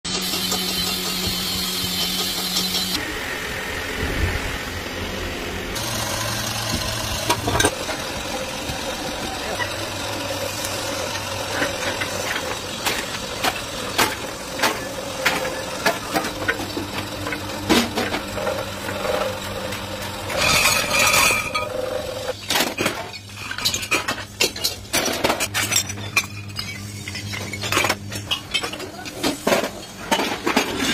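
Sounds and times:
machine hum: 0:00.2 - 0:22.4
metal clatter: 0:06.8 - 0:08.0.

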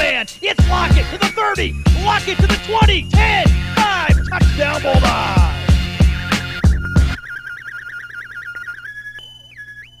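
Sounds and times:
high wavering synth tone: 0:03.9 - 0:10.0.

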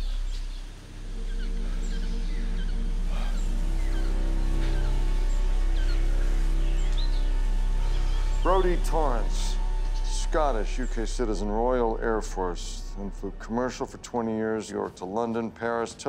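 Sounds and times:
forest birds chirping: 0:00.0 - 0:16.0
low film score drone: 0:00.0 - 0:16.0.

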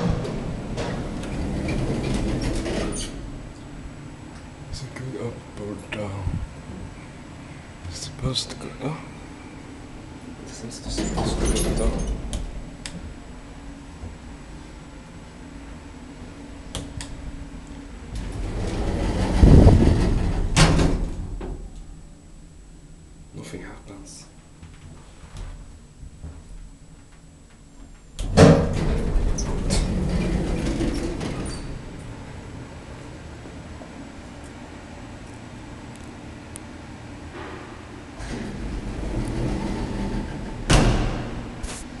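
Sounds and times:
elevator door sliding: 0:00.0 - 0:04.6, 0:10.7 - 0:13.1, 0:17.8 - 0:21.7, 0:28.2 - 0:34.4, 0:35.6 - 0:42.0
loud thump: 0:40.7 - 0:41.6.

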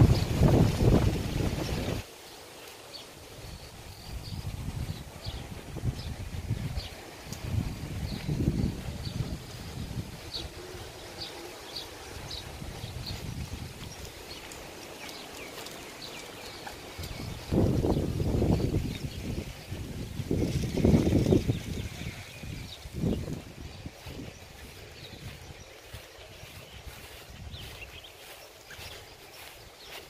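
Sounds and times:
wind gusts on microphone: 0:00.0 - 0:02.1, 0:03.2 - 0:30.0
small birds chirping: 0:00.0 - 0:30.0.

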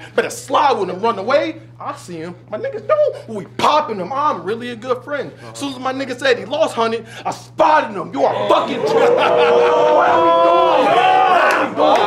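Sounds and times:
crowd of men shouting: 0:08.2 - 0:12.0.

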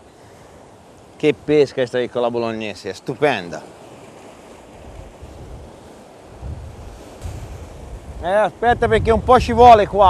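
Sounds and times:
sea surf on rocky shore: 0:00.0 - 0:10.0
wind buffeting microphone: 0:03.9 - 0:10.0.

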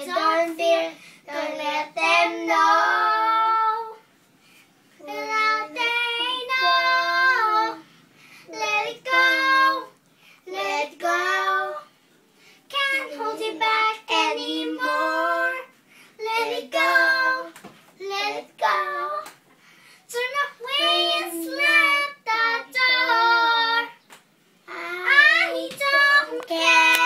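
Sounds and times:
girl and boy singing unaccompanied: 0:00.0 - 0:04.1, 0:05.0 - 0:12.0, 0:12.7 - 0:19.4, 0:20.0 - 0:27.0.

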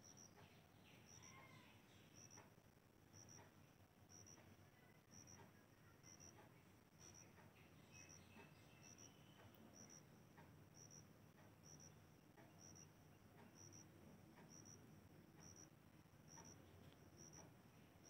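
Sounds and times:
insect double chirping: 0:01.0 - 0:01.5, 0:06.0 - 0:06.4, 0:08.0 - 0:10.1, 0:10.7 - 0:12.0, 0:12.6 - 0:13.9.

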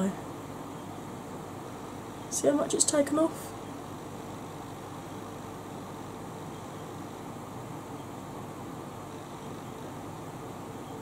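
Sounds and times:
electric fan running: 0:00.0 - 0:11.0.

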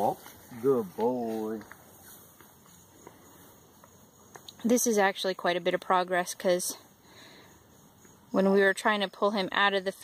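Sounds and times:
footsteps on grass: 0:00.0 - 0:03.6.

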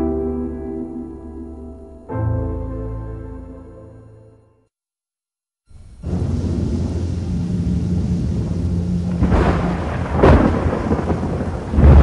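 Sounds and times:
steady rain: 0:05.7 - 0:12.0
rolling thunder: 0:05.9 - 0:12.0.

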